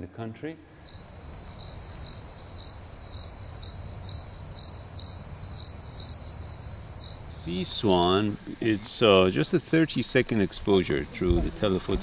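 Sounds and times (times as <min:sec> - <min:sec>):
crickets chirping: 0:00.5 - 0:12.0.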